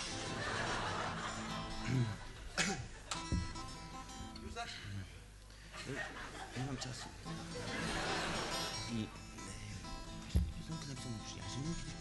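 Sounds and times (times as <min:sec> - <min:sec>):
crowd noise: 0:00.0 - 0:03.1, 0:07.2 - 0:09.4
acoustic guitar ringing: 0:07.2 - 0:12.0.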